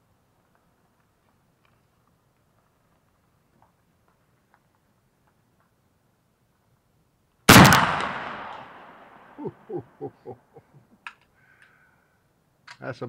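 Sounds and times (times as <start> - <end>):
rifle shot: 7.5 - 9.3.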